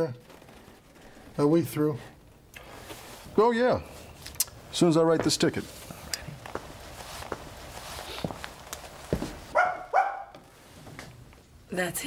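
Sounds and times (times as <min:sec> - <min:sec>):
faint clicks and rustling: 0:00.0 - 0:03.2
dog barking: 0:09.5 - 0:10.4.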